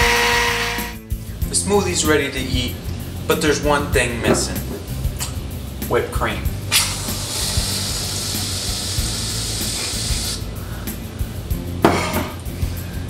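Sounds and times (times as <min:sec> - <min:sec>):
background music: 0:00.0 - 0:13.0
aerosol can spraying: 0:06.7 - 0:11.0.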